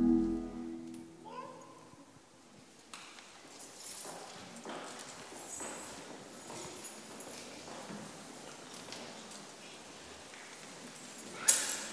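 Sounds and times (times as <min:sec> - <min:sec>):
footsteps and shuffling in a hall: 0:03.1 - 0:11.9.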